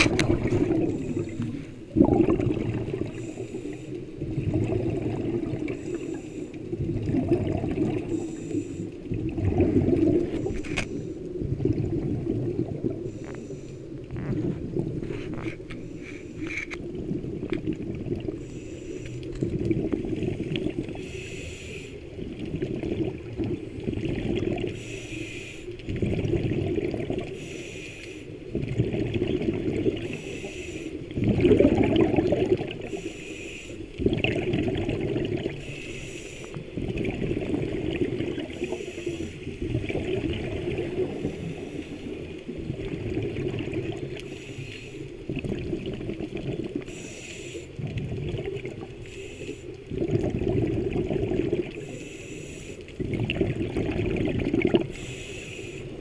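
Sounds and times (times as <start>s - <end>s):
bubbling exhalation: 0.0s - 3.2s, 4.3s - 5.8s, 6.8s - 8.2s, 9.2s - 10.6s, 25.9s - 27.3s, 31.2s - 32.9s, 34.0s - 35.6s, 49.9s - 51.8s, 53.0s - 54.9s
regulator inhalation hiss: 8.1s - 9.0s, 18.4s - 19.2s, 21.0s - 22.0s, 24.8s - 25.8s, 27.3s - 28.4s, 30.0s - 31.1s, 32.8s - 33.9s, 35.6s - 36.7s, 38.6s - 39.5s, 44.2s - 45.2s, 46.9s - 47.8s, 49.0s - 49.8s, 51.8s - 52.8s, 54.9s - 56.0s.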